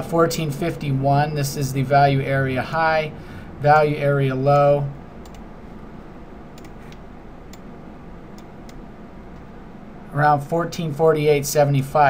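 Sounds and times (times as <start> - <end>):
room and microphone hiss: 0.0 - 12.0
computer mouse clicks: 4.6 - 5.5, 6.5 - 7.7, 8.3 - 9.5.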